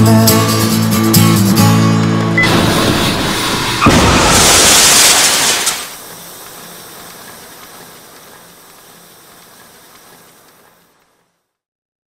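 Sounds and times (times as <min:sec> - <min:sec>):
loud car crash: 0:02.4 - 0:06.0
hiss: 0:02.7 - 0:10.9.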